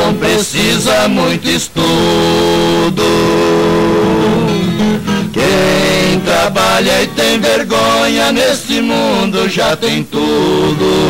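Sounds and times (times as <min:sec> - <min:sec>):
strummed acoustic guitars: 0:00.0 - 0:09.5
two men singing in harmony: 0:00.0 - 0:11.0.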